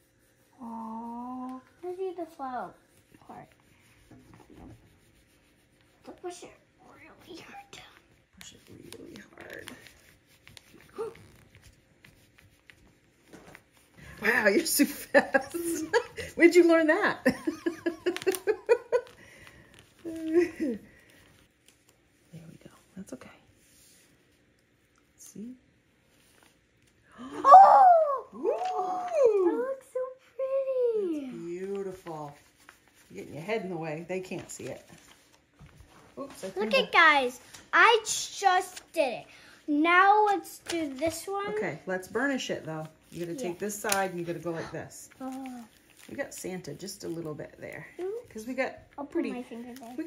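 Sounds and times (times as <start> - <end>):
stick scratching on transfer sheet: 2.8 - 16.7.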